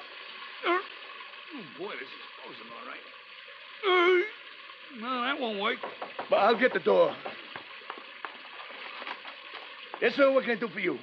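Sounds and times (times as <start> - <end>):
water spraying from a pipe: 0.0 - 11.0.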